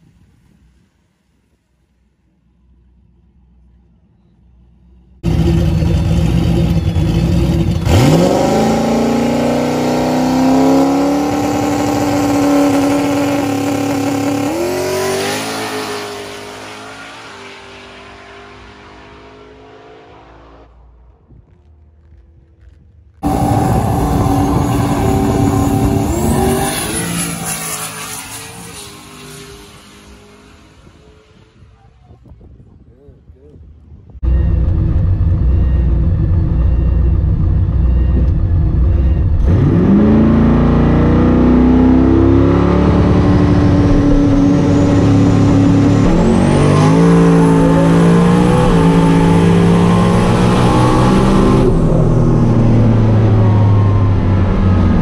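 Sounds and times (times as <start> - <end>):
car engine accelerating hard: 5.2 - 31.7, 34.4 - 55.0.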